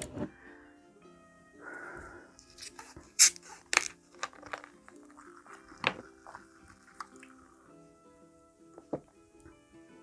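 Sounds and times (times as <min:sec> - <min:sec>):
soft background music: 0:00.0 - 0:10.0
plastic bottle cap clicks: 0:02.6 - 0:05.0.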